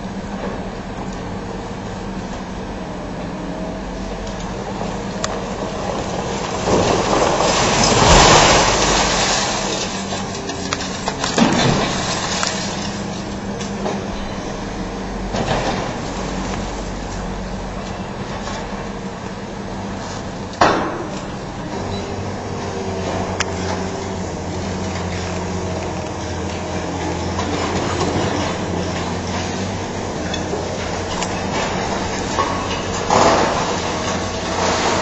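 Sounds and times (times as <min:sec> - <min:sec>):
excavator diesel engines running: 0:00.0 - 0:35.0
broken concrete crashing down: 0:05.6 - 0:14.3, 0:20.6 - 0:35.0.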